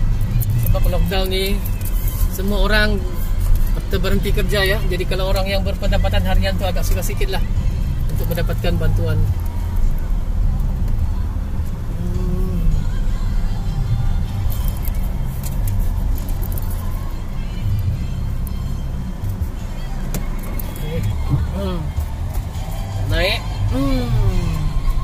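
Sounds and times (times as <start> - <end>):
car engine and road rumble: 0.0 - 25.0
voice with music: 0.0 - 25.0.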